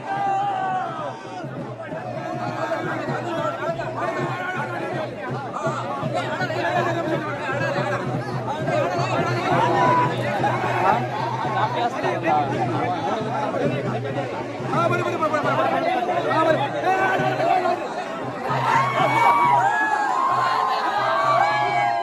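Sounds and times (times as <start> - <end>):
crowd of men talking and calling: 0.0 - 22.0.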